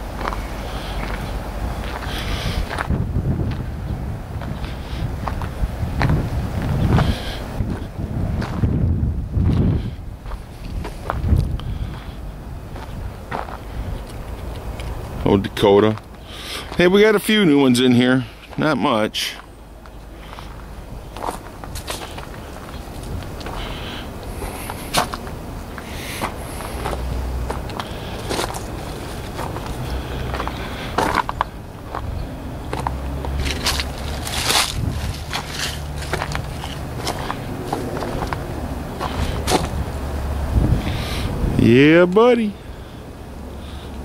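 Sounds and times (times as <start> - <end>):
footsteps on gravel and leaves: 0.0 - 3.7, 18.4 - 39.9.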